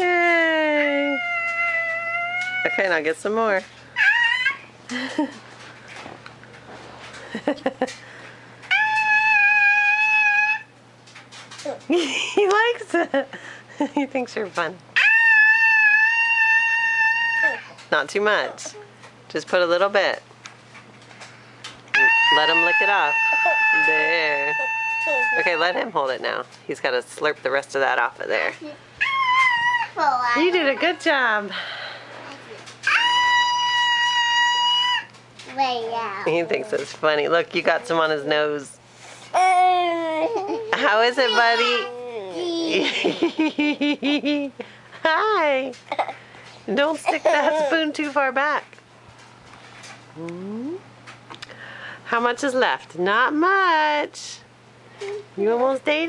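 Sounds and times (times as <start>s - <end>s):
child squealing: 4.0s - 4.7s, 8.7s - 10.7s, 15.0s - 17.8s, 22.0s - 25.9s, 29.0s - 30.5s, 32.8s - 35.1s, 41.2s - 42.6s
child vocal sounds: 15.3s - 17.8s, 22.0s - 25.7s, 39.4s - 42.8s.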